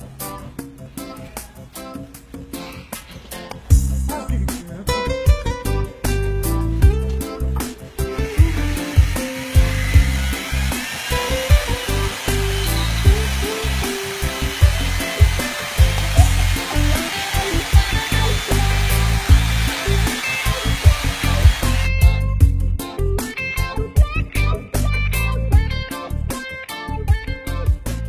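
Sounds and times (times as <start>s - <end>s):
background music with bass line: 0.0s - 28.0s
appliance running with rushing noise: 7.6s - 22.0s.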